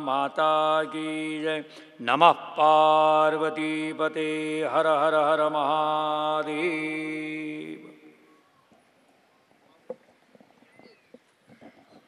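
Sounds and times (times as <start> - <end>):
microphone handling knocks and rustles: 9.8 - 12.0.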